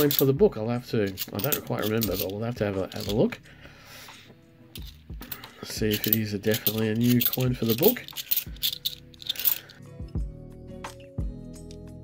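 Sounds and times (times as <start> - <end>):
coins clinking and scraping: 0.0 - 0.4, 1.0 - 3.4, 4.7 - 9.8
soft background music with beat: 0.0 - 12.0.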